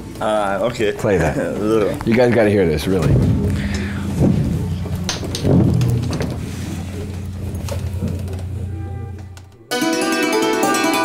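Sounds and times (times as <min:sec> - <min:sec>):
low hum: 0:02.7 - 0:09.7
knocks: 0:03.0 - 0:09.4
hammered dulcimer: 0:09.7 - 0:11.0.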